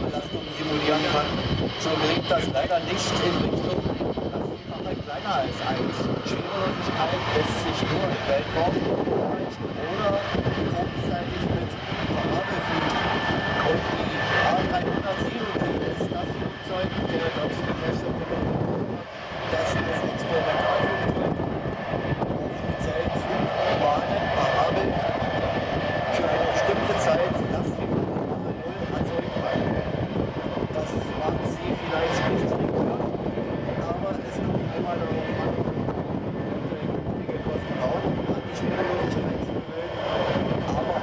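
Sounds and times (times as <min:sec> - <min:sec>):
high engine whine: 0:00.0 - 0:41.0
jet engines running: 0:00.0 - 0:41.0.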